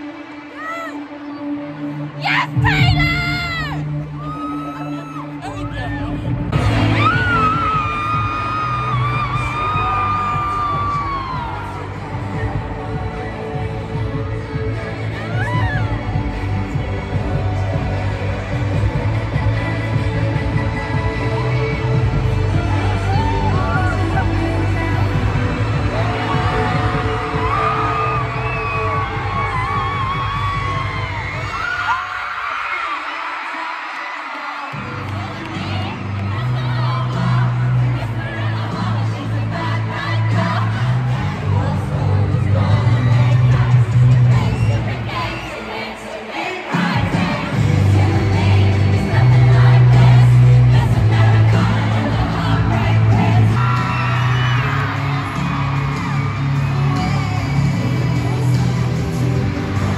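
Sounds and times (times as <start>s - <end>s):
crowd yelling and whooping: 0.0s - 59.9s
live concert music: 0.0s - 59.9s
heavy bass: 5.7s - 31.4s, 47.0s - 59.9s.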